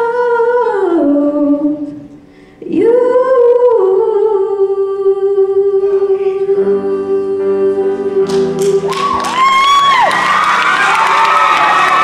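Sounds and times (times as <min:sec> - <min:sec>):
singer breathing: 0:02.1 - 0:02.6.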